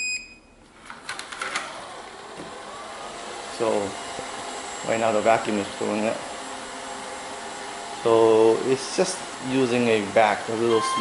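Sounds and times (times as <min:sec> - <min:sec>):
robot vacuum beep: 0:00.0 - 0:00.4, 0:10.7 - 0:11.0
vacuum fan and brushes whirring: 0:00.7 - 0:11.0.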